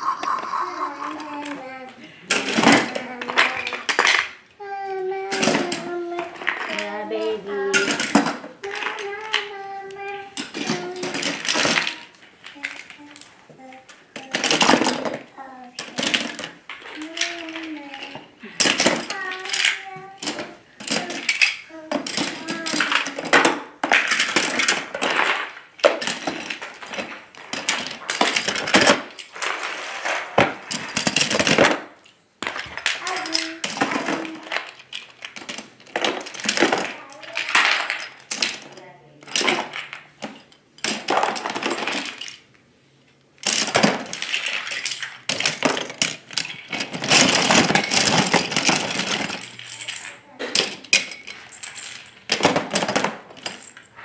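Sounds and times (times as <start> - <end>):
person speaking: 0.0 - 3.8
toy trains clattering into bin: 0.0 - 42.5, 43.4 - 54.0.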